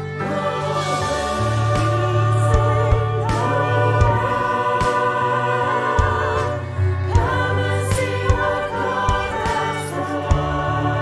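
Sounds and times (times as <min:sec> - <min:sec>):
mixed choir singing: 0:00.0 - 0:11.0
piano: 0:00.0 - 0:11.0
violin: 0:00.0 - 0:11.0.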